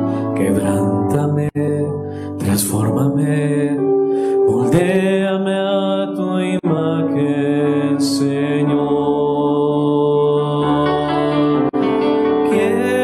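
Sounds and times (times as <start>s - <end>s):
man singing worship song: 0.0s - 11.8s, 12.4s - 13.0s
electronic keyboard chords: 0.0s - 13.0s.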